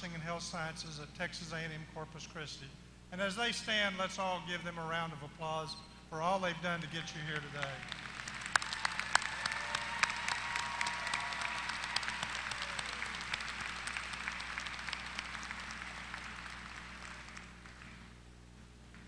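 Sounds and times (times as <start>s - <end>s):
large audience applauding: 6.8s - 18.1s.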